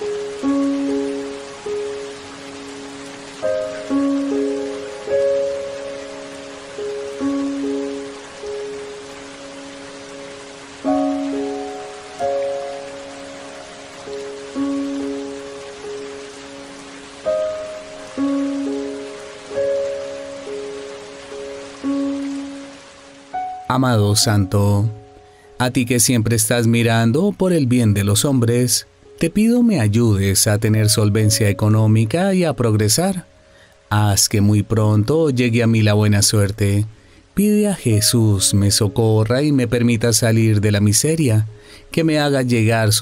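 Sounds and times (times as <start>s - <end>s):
soft slow instrumental music: 0.0s - 43.0s
steady hiss: 0.0s - 43.0s.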